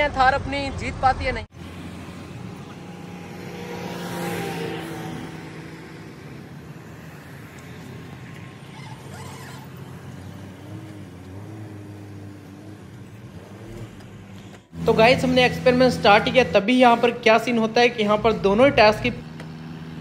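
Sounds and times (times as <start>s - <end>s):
vehicle engine under load: 1.5s - 20.0s.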